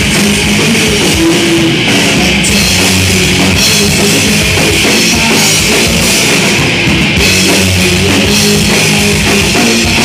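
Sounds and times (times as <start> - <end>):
punk rock band playing loud: 0.0 - 10.0.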